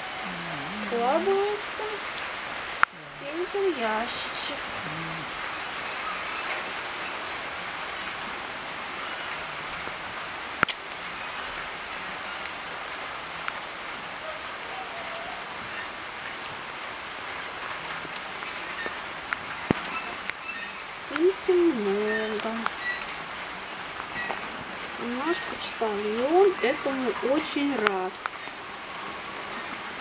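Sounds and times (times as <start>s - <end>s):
light rain falling: 0.0s - 30.0s.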